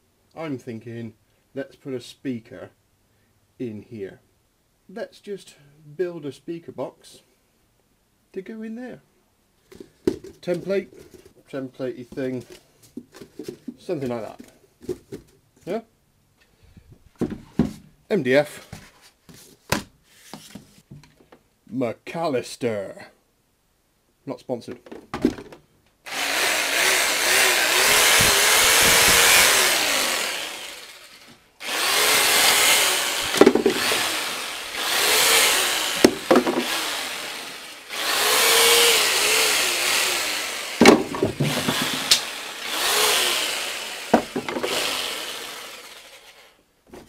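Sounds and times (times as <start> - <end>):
jigsaw cutting board: 26.1 - 46.6
sharp knocks: 33.3 - 34.0, 36.0 - 36.7, 40.8 - 42.3, 44.1 - 44.8.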